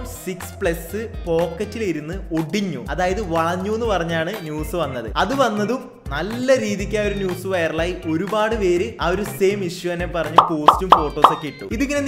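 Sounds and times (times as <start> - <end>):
sharp pops: 10.4 - 11.4
person speaking: 10.4 - 11.5.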